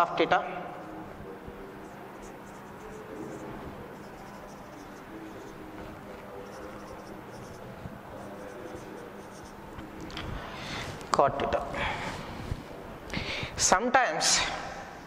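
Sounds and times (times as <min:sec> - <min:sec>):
steady low hum: 0:00.0 - 0:15.0
marker writing on whiteboard: 0:00.7 - 0:11.1.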